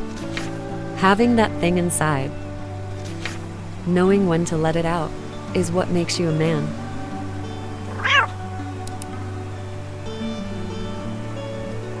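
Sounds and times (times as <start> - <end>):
background music with held notes: 0.0 - 12.0
cat meow: 7.9 - 8.4
faint clicks: 8.8 - 9.2.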